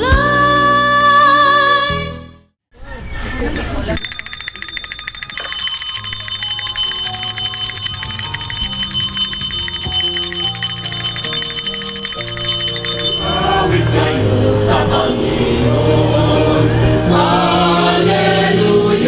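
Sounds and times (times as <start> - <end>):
small bell ringing rapidly: 3.6 - 14.3.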